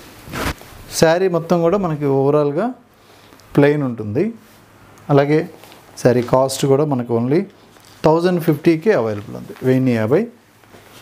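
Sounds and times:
fabric rustling swish: 0:00.0 - 0:00.9
person speaking: 0:00.9 - 0:10.4.

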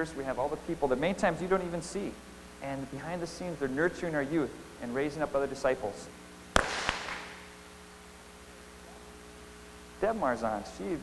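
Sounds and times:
haze of clapping: 0:06.5 - 0:07.4
sharp hand claps: 0:06.5 - 0:07.4.

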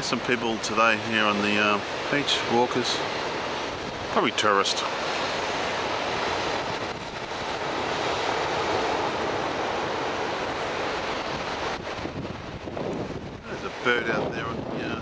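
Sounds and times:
ocean surf breaking: 0:00.0 - 0:15.0
wind across microphone: 0:01.2 - 0:15.0.

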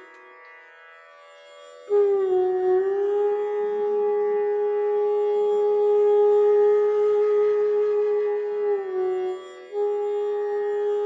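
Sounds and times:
flute holding long note: 0:01.9 - 0:11.0.

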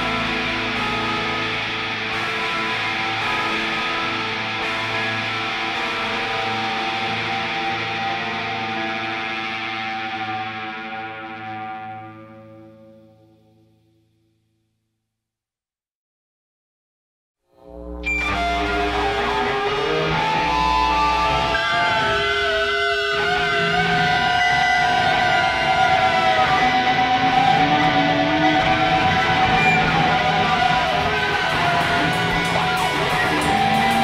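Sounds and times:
distorted electric guitars droning: 0:00.0 - 0:13.7, 0:17.6 - 0:34.0.

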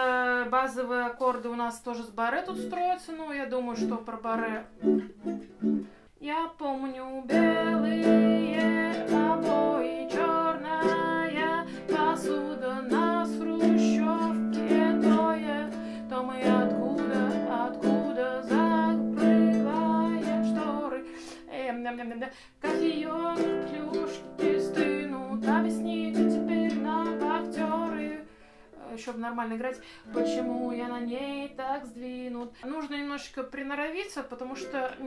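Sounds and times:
nylon-string guitar strumming: 0:03.8 - 0:06.0, 0:07.3 - 0:21.5, 0:22.6 - 0:28.3, 0:29.8 - 0:32.4.

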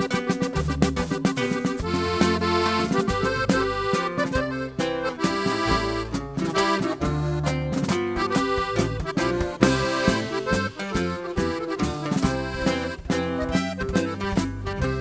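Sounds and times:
button accordion playing: 0:00.0 - 0:15.0
drums keeping a steady beat: 0:00.0 - 0:15.0.

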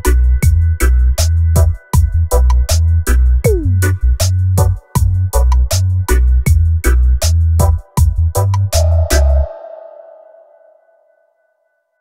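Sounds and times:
reverberating musical tone: 0:09.4 - 0:11.5.

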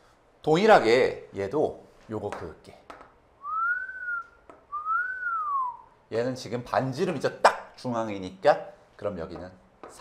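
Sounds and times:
man whistling: 0:03.4 - 0:06.0.

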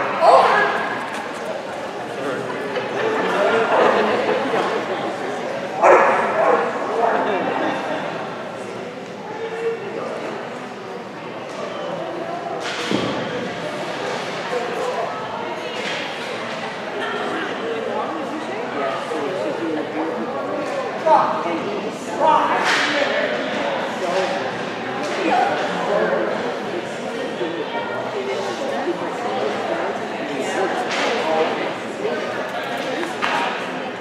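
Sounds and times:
murmur of voices: 0:00.0 - 0:34.0
dog barking: 0:05.8 - 0:06.7.

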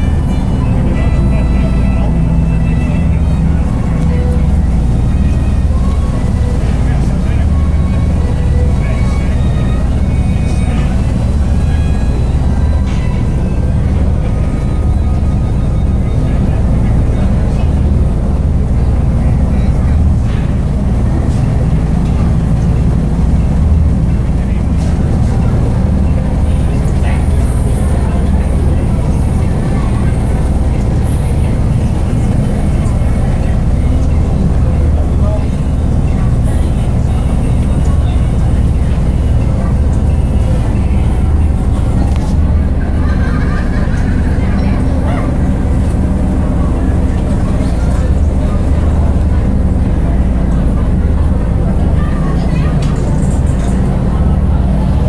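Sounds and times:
boat engine rumbling: 0:00.0 - 0:55.0
indistinct voices: 0:00.0 - 0:55.0.

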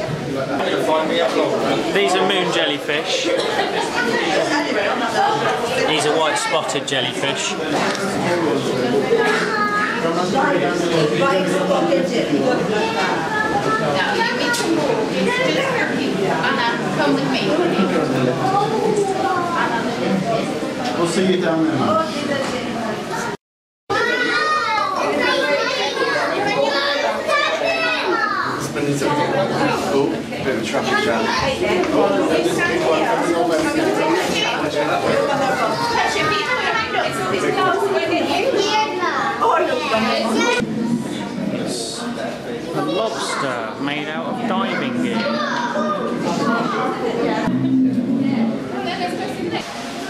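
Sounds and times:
children chattering: 0:00.0 - 0:50.0
crowd voices talking: 0:00.0 - 0:50.0.

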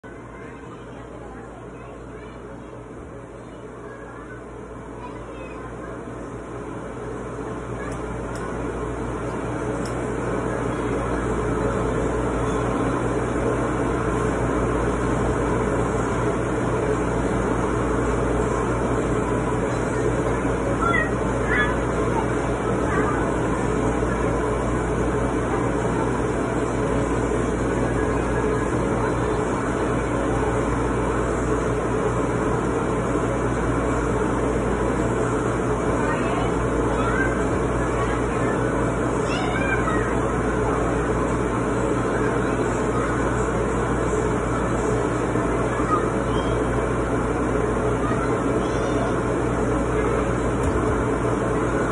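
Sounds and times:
constant low hum: 0:00.0 - 0:51.9
indoor playground noise: 0:00.0 - 0:51.9.

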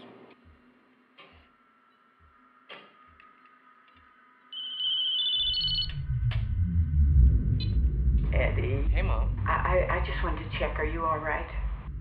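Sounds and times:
phone ringtone beeps: 0:04.5 - 0:06.0
loud low rumble: 0:05.7 - 0:12.0
soft low pulses: 0:05.8 - 0:12.0.

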